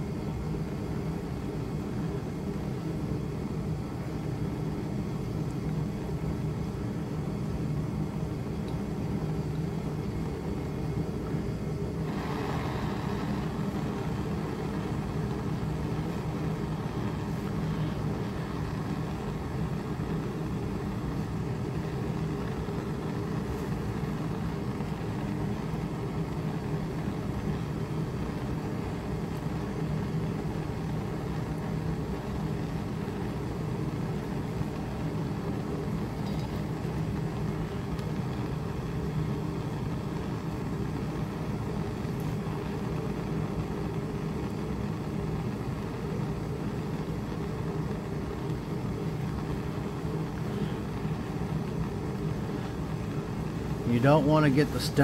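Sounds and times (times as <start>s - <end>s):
propane torch burning: 0.0s - 55.0s.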